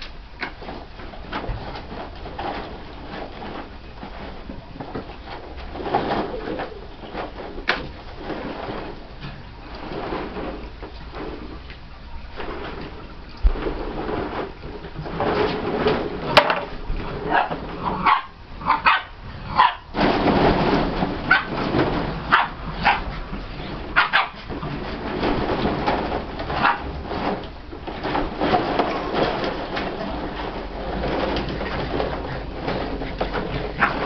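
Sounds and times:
continuous rustling: 0:00.0 - 0:34.0
puppies yipping and barking: 0:17.3 - 0:19.9.

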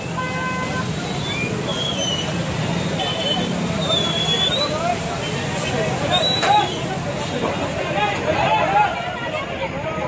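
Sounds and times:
vehicle horn toot: 0:00.0 - 0:01.0
people's voices: 0:00.0 - 0:10.0
street traffic noise: 0:00.0 - 0:10.0.

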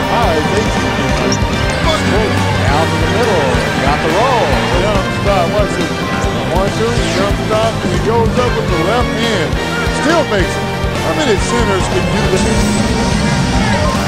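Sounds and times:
music: 0:00.0 - 0:14.0.

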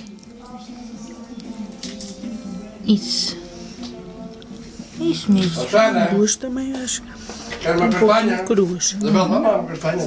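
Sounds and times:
television background music: 0:00.0 - 0:10.0
voices on television: 0:00.0 - 0:10.0.

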